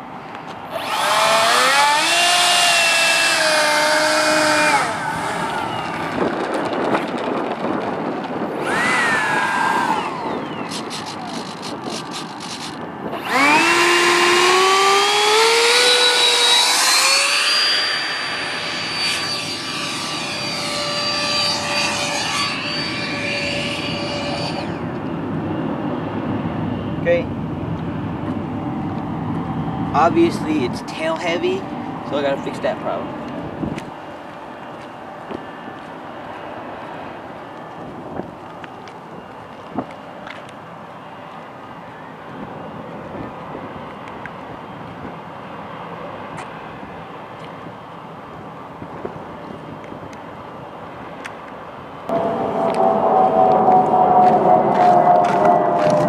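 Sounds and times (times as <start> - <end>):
electric ducted fan whine: 0.0 - 56.0.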